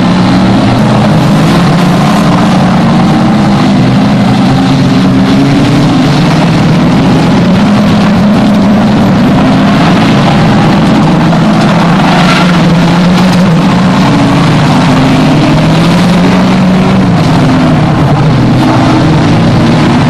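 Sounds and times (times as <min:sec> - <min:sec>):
racing car engines: 0:00.0 - 0:20.0.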